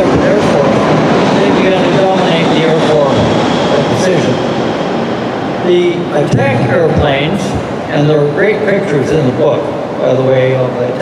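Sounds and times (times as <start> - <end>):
room noise rumble: 0.0 - 11.0.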